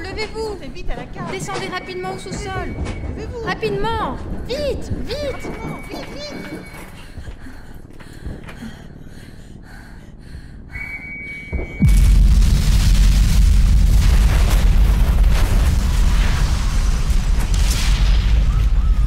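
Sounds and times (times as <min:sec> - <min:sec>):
faint steady whistle tone: 0:10.7 - 0:11.8
falling whistle: 0:10.8 - 0:11.8
loud explosion: 0:11.5 - 0:19.0
deep heavy rumble: 0:11.8 - 0:19.0.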